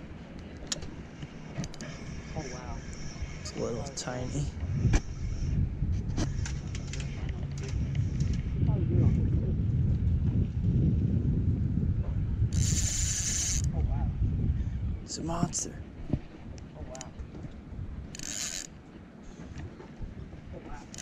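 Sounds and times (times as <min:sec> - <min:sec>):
wind rumble on microphone: 0:00.0 - 0:21.0
fishing reel clicks: 0:12.5 - 0:13.7, 0:18.1 - 0:18.7.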